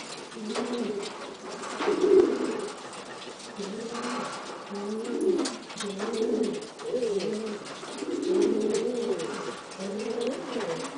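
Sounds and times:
pigeon cooing: 0:00.3 - 0:10.9.

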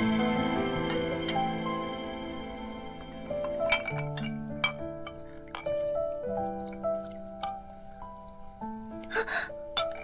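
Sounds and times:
soft background music: 0:00.0 - 0:10.0
dishes clinking in a basin: 0:03.4 - 0:06.0, 0:09.8 - 0:10.0.

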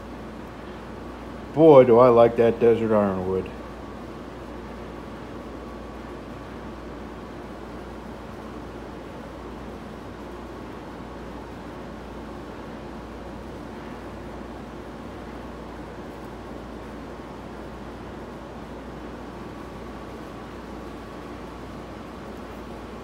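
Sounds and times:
mechanical hum and hiss: 0:00.0 - 0:23.0.

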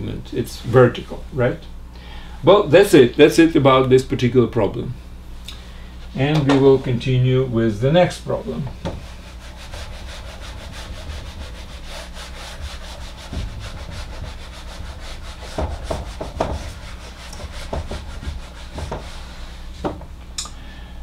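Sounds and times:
eraser wiping whiteboard: 0:08.8 - 0:20.0
soft knocks: 0:19.8 - 0:20.1.

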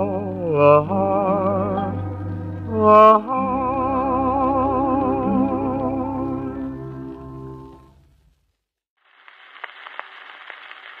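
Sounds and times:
record surface hiss: 0:00.0 - 0:11.0.

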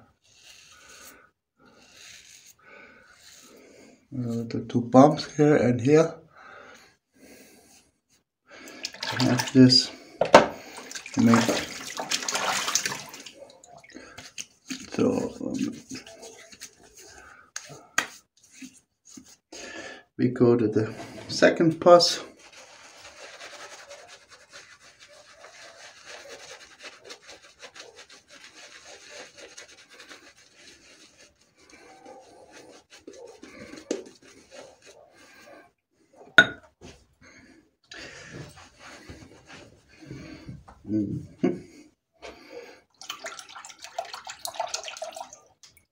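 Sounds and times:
water splashing in sink: 0:08.8 - 0:15.1, 0:42.9 - 0:45.9.

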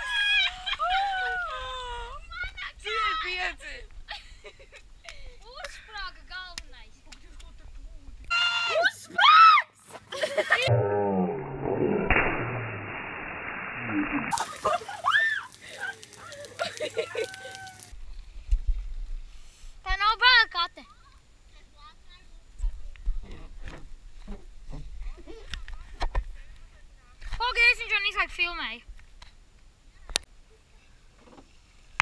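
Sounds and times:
children squealing: 0:14.9 - 0:16.3, 0:17.1 - 0:18.0
people calling out: 0:15.0 - 0:18.0.

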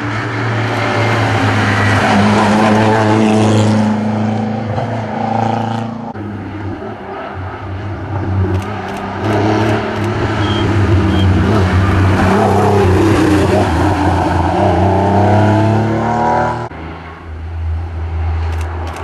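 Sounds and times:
rally car engine revving: 0:00.0 - 0:16.8.

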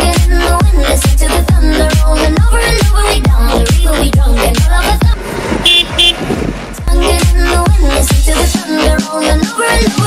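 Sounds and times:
electronic dance music: 0:04.9 - 0:06.2
short horn toots: 0:05.6 - 0:06.3.

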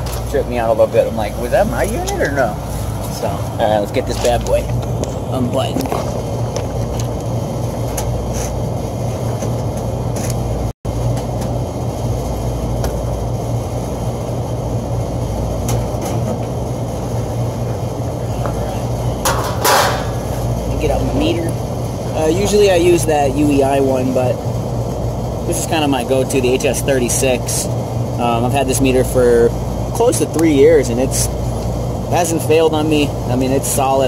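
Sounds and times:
hvac units humming: 0:00.0 - 0:34.0.

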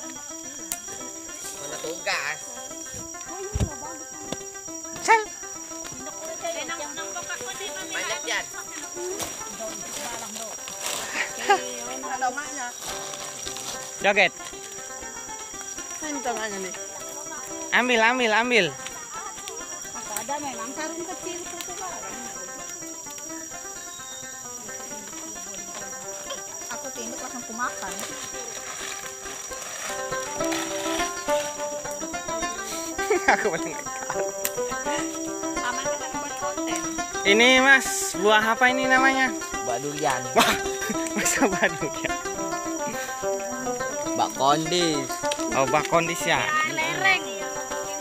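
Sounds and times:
held musical tones: 0:00.0 - 0:48.0
high-pitched insect buzz: 0:00.0 - 0:48.0.

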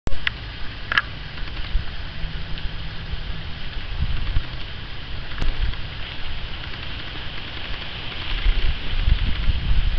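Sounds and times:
low rumble: 0:00.1 - 0:09.9.

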